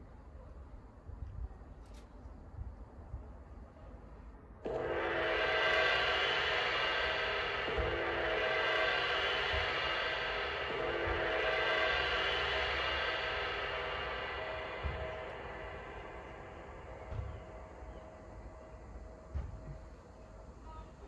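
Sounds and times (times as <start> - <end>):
large gong ringing: 4.7 - 20.2.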